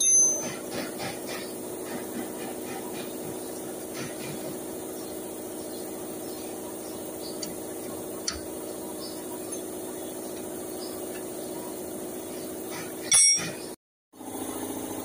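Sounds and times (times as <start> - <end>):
steady hum: 1.8 - 15.0.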